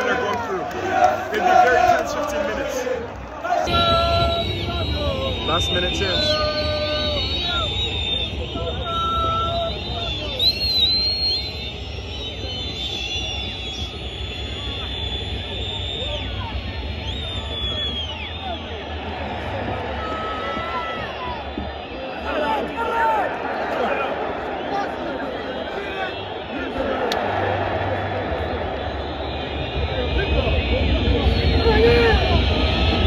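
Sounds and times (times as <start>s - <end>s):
crowd shouting and chanting: 0.0s - 11.6s, 15.9s - 33.0s
high whistles: 3.7s - 18.9s.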